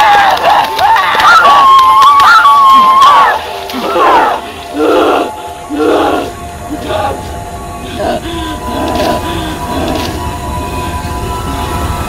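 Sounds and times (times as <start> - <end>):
woman moaning and crying: 3.8 - 11.9.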